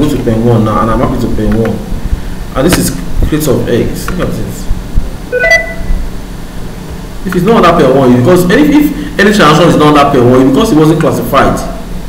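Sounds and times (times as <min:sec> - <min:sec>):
steady low hum: 0:00.0 - 0:12.0
electronic alert chime: 0:05.3 - 0:06.0.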